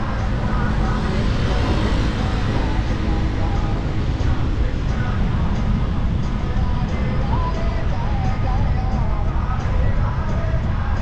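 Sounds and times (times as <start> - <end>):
city traffic noise: 0.0 - 11.0
wind rumble on microphone: 0.0 - 11.0.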